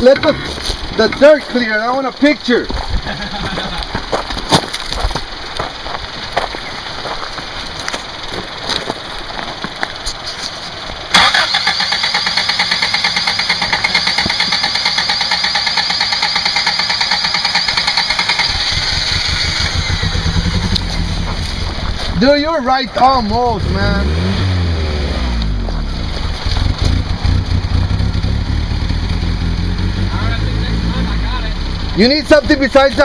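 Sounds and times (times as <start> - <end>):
gravel crackling under tyres: 0.0 - 33.0
pickup engine working: 0.0 - 33.0
loud rapid even pulsing: 11.1 - 21.5.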